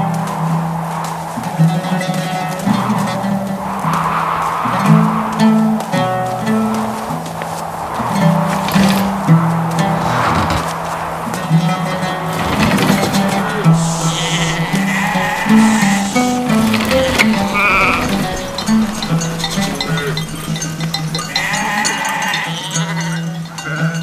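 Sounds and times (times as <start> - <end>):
film score with low drone: 0.0 - 22.4
sheep bleating: 13.8 - 16.3, 21.3 - 23.3.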